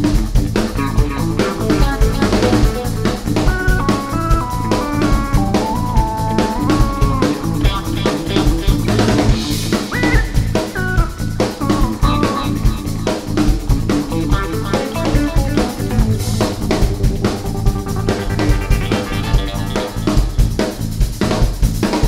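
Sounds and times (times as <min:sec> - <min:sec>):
drum kit: 0:00.0 - 0:22.0
electric bass: 0:00.0 - 0:22.0
electric guitar: 0:00.0 - 0:22.0
keyboards: 0:00.0 - 0:22.0.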